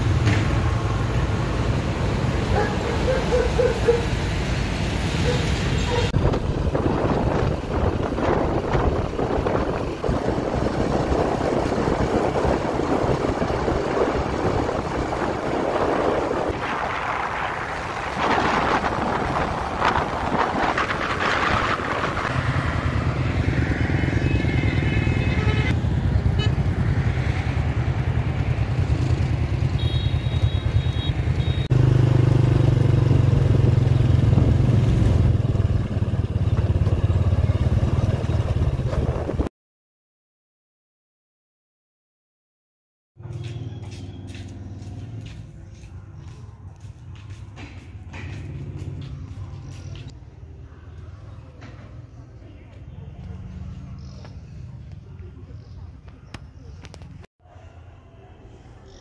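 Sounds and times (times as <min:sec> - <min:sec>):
road noise: 0:00.0 - 0:39.5, 0:43.2 - 0:59.0
wind buffeting microphone: 0:06.1 - 0:22.4, 0:38.3 - 0:39.5
motorbike engine: 0:19.8 - 0:39.5.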